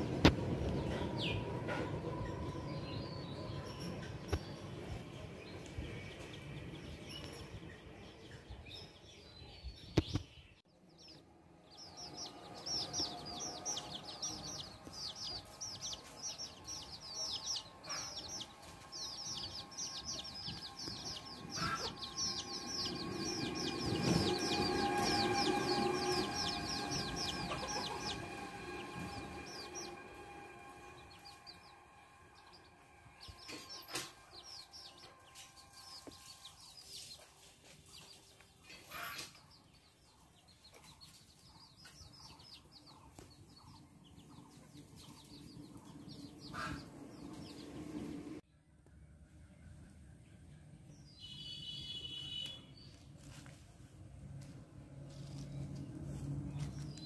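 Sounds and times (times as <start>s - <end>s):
small birds chirping: 2.1s - 30.1s, 32.4s - 53.1s
low rushing sound: 11.8s - 33.5s
lower bird calls: 12.6s - 28.2s.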